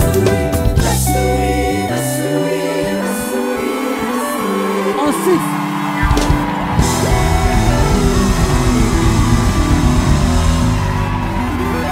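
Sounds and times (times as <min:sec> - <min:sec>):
drum kit played hard: 0:00.0 - 0:01.4, 0:06.0 - 0:11.8
gospel band playing: 0:00.0 - 0:11.9
bass notes: 0:06.0 - 0:11.9.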